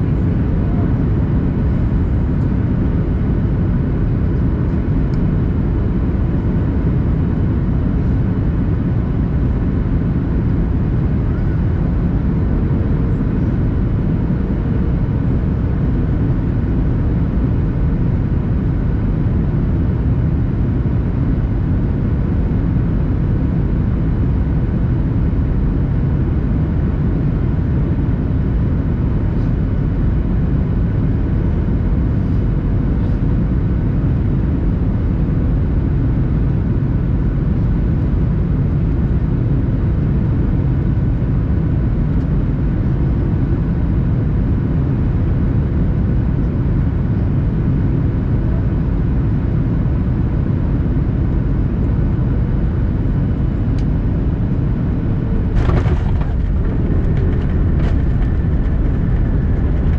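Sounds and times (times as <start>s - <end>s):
engines and airflow rumble: 0.0s - 59.9s
faint whining tones: 54.3s - 59.9s
landing gear thump and clatter: 55.3s - 59.9s.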